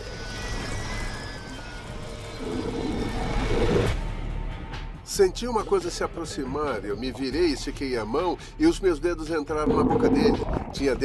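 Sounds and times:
low underwater-style rumble: 9.5 - 11.0.

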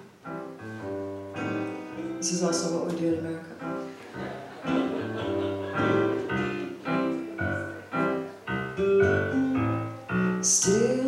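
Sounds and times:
electric piano chords: 0.0 - 11.0.

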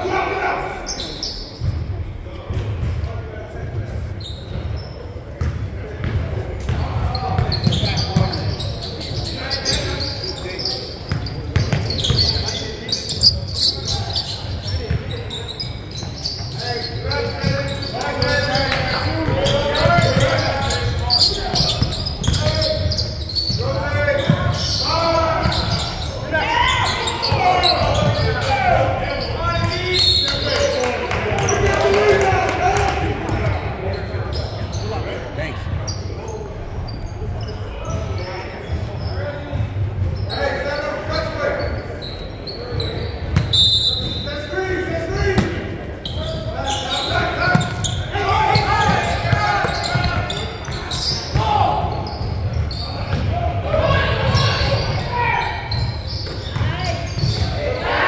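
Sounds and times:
voices and shouts in a hall: 0.0 - 58.0.

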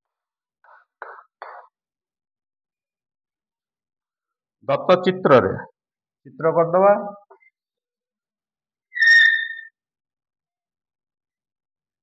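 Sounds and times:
chalk squeaking on chalkboard: 9.0 - 9.8.

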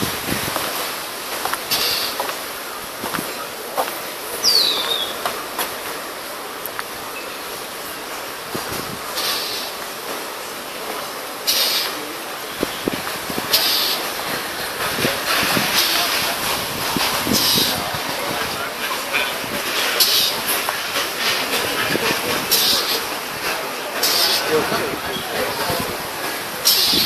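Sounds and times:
distant voices: 0.0 - 27.0
street background noise: 0.0 - 27.0
brief hissing bursts: 1.6 - 2.5, 9.1 - 9.8, 11.4 - 12.2, 13.5 - 14.2, 17.0 - 18.0, 24.0 - 24.6.

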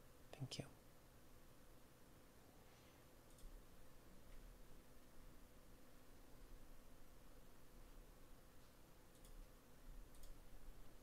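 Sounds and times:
faint steady hum: 0.0 - 11.0
faint whisper: 0.3 - 0.8.

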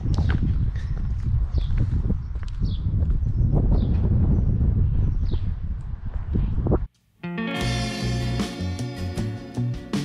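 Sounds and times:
footsteps on pavement: 0.0 - 3.9
wind rumble on microphone: 0.0 - 6.9.

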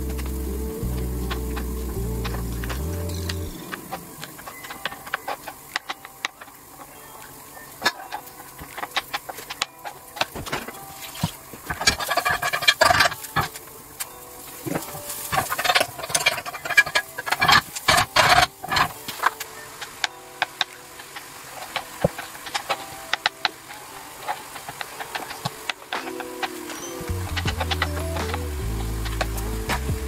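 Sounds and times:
clattering: 7.8 - 19.5.

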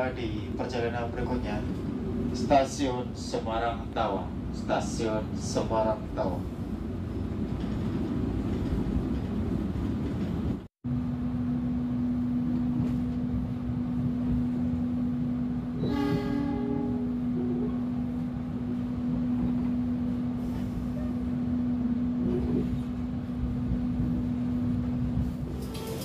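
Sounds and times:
train interior rumble: 0.0 - 26.0
train horn: 15.8 - 17.8.

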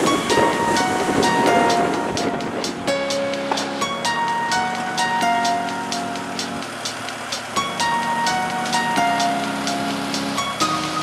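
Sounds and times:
held synth notes: 0.0 - 11.0
rushing noise: 0.0 - 11.0
sharp percussion hits: 0.0 - 11.0.

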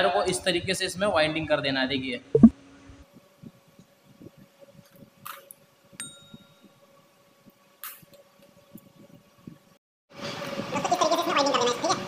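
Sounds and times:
bell-like ding: 6.0 - 6.6.

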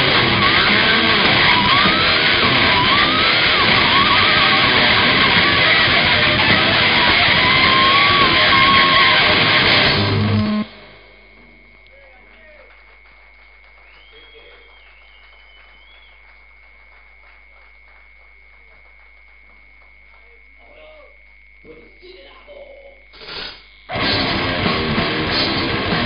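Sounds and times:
heavy metal band playing: 0.0 - 11.0, 23.9 - 26.0
steady high whine: 0.0 - 26.0.

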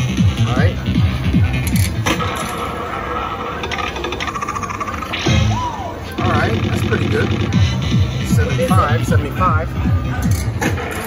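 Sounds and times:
rapid electronic ticking: 0.0 - 5.5, 6.2 - 9.6.

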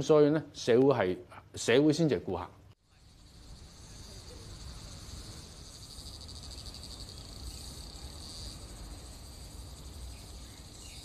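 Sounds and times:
faint low outdoor rumble: 2.8 - 11.0
insects chirring: 2.9 - 11.0.

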